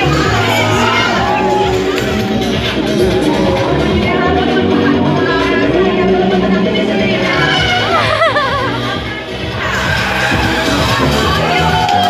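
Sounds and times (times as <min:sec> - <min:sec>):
children shouting and cheering: 0:00.0 - 0:04.2, 0:07.2 - 0:12.0
loud music: 0:00.0 - 0:12.0.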